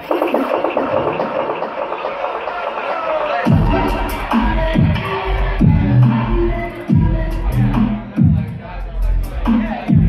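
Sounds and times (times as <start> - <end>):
electronic bass music: 0.0 - 10.0.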